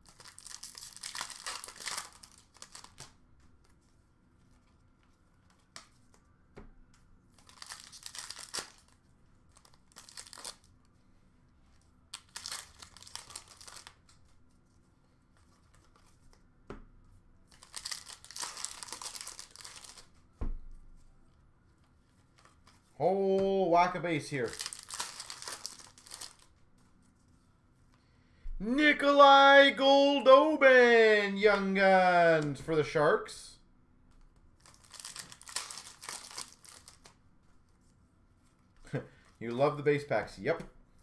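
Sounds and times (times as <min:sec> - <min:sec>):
wrappers tearing and crinkling: 0:00.0 - 0:03.2, 0:07.4 - 0:10.7, 0:12.2 - 0:14.0, 0:17.5 - 0:20.1, 0:24.4 - 0:26.6, 0:34.6 - 0:37.2.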